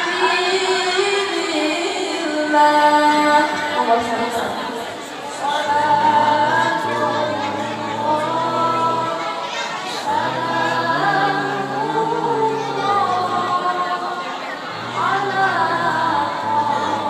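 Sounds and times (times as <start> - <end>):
woman reciting melodically through microphone: 0.0 - 17.0.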